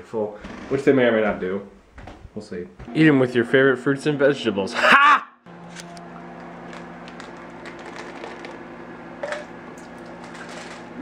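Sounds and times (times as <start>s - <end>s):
steady low appliance hum: 0.0s - 11.0s.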